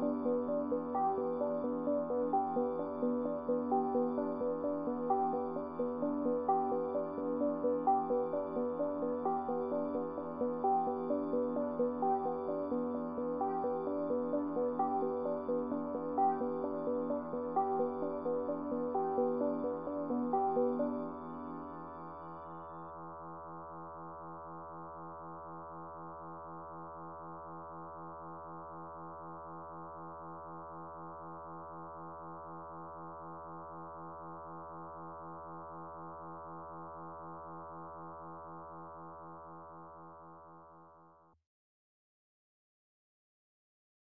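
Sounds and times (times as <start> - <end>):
pulsing synthesizer drone chord: 0.0 - 41.0.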